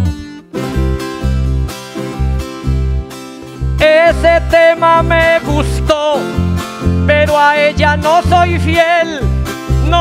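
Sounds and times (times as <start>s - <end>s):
pulsing electric bass line: 0.0s - 10.0s
tiple strummed: 0.0s - 10.0s
person singing: 3.8s - 6.4s, 7.0s - 10.0s.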